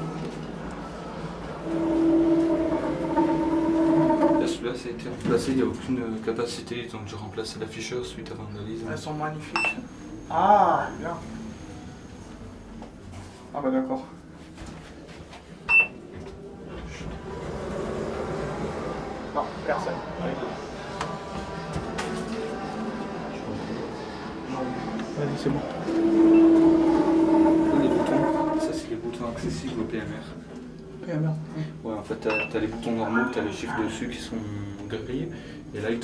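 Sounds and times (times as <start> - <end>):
elevator drive humming: 0.0 - 4.7, 15.7 - 29.9
elevator electronic beep: 9.6 - 11.8, 15.7 - 16.0, 25.8 - 27.2.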